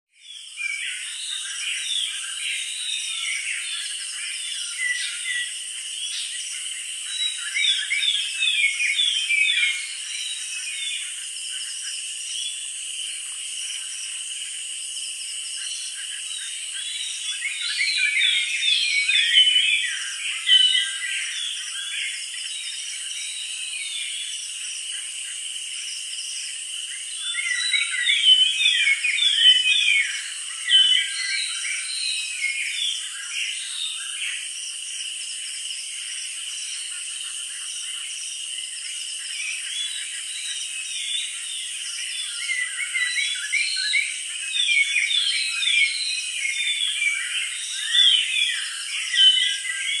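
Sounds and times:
small birds chirping: 0.2s - 50.0s
high insect drone: 0.3s - 50.0s.

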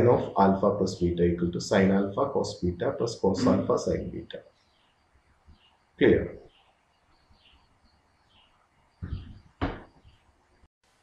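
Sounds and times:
thumps: 9.0s - 10.1s.

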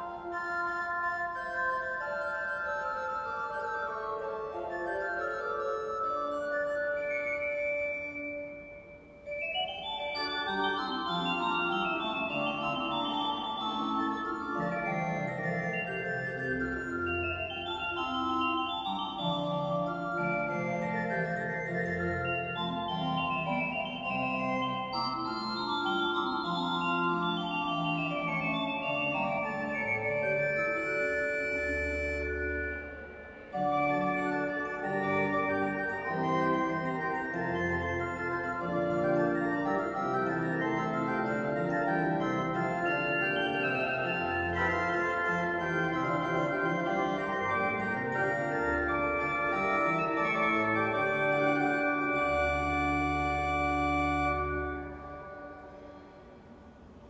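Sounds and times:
pipe organ chords: 0.0s - 56.6s.

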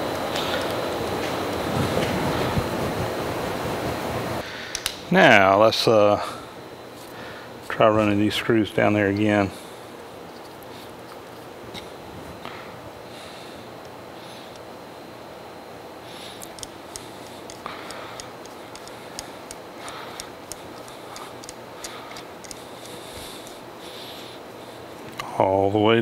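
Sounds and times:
room noise: 0.0s - 26.0s
screwdriver metallic clicks and scrapes: 16.4s - 19.6s, 20.2s - 23.0s.

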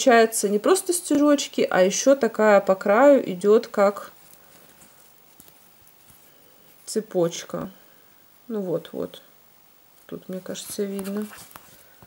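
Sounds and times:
fingers handling felt ornament: 3.6s - 7.6s, 10.0s - 12.0s.

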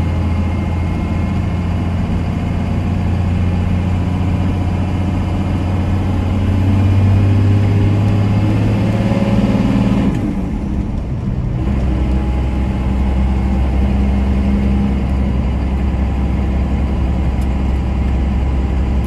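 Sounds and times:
diesel truck engine under load: 0.0s - 19.0s.

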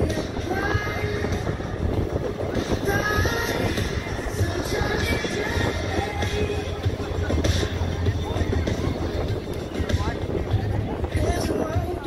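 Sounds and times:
crowd voices: 0.0s - 12.0s
faint music: 0.0s - 12.0s
wind buffeting microphone: 0.0s - 12.0s.

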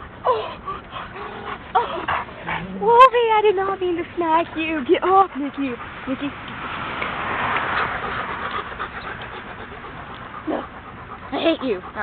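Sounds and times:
dog panting: 0.0s - 12.0s.

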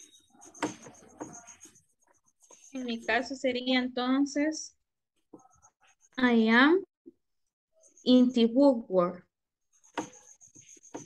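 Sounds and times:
video call background noise: 0.0s - 7.2s, 7.8s - 11.0s
person speaking: 2.7s - 4.6s.

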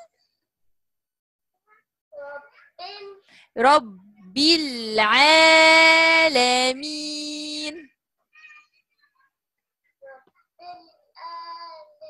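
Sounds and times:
child reciting over video call: 1.6s - 12.0s.

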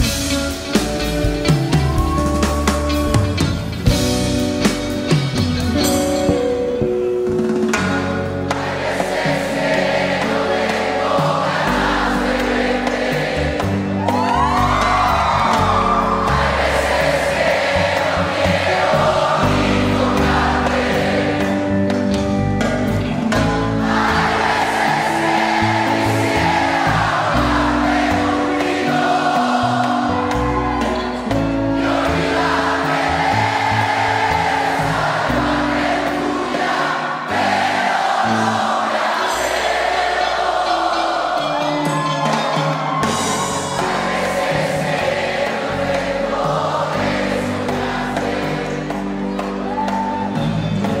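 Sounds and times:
live rock band playing: 0.0s - 51.0s
concert audience singing along: 6.3s - 51.0s.

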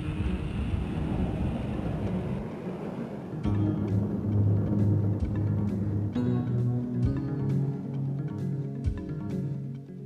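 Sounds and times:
aircraft engine rumble: 0.0s - 10.0s.

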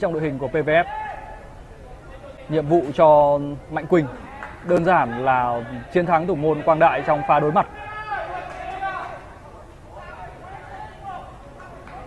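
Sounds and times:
distant voices calling out: 3.4s - 12.0s.

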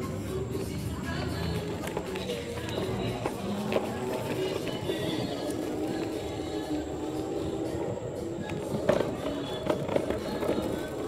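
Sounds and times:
electric scooter motor whirring: 0.0s - 11.0s
small tyres rolling on pavement: 0.0s - 11.0s.

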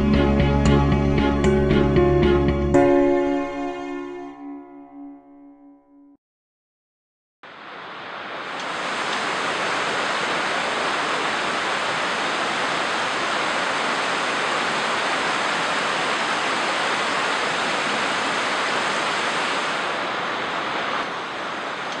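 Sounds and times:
river rushing over stones: 7.5s - 22.0s.

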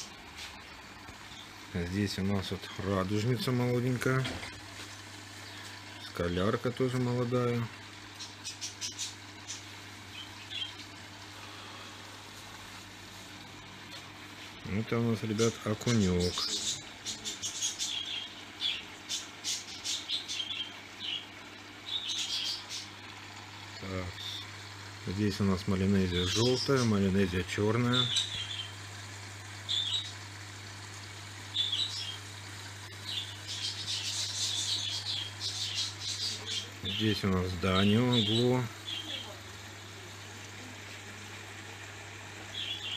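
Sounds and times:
aquarium pumps humming: 0.0s - 42.9s
small birds chirping: 0.4s - 4.2s, 5.3s - 11.6s, 13.9s - 39.4s, 42.4s - 42.9s.

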